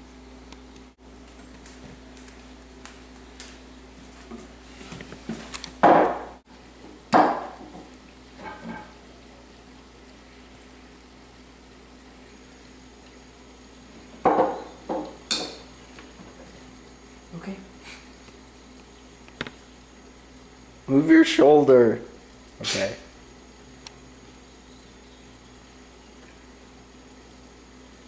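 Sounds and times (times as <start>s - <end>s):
steady low hum: 0.0s - 28.0s
knocks on wooden table: 5.8s - 6.4s, 14.2s - 15.2s.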